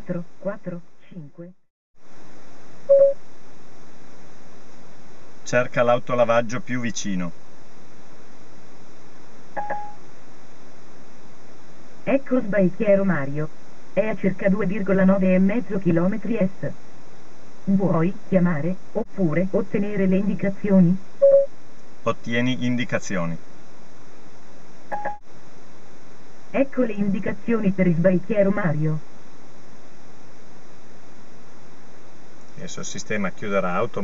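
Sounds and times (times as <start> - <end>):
background hiss: 2.0 - 34.0
short electronic beep: 2.9 - 3.2, 9.6 - 10.0, 21.2 - 21.5
phone line hiss: 2.9 - 3.3, 9.6 - 10.0, 21.2 - 21.6, 24.9 - 25.2.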